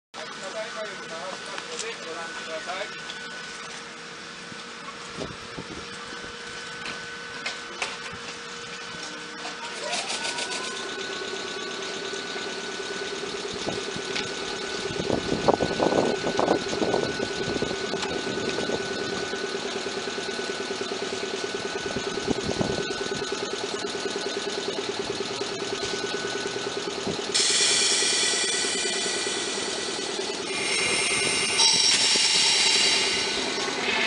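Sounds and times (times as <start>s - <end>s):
train electrical hum: 0.2s - 34.0s
loud bright noise: 27.3s - 34.0s.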